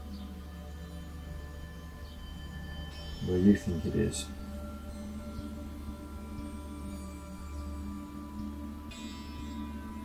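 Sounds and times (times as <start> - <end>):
ambient music with ringing tones: 0.0 - 10.0.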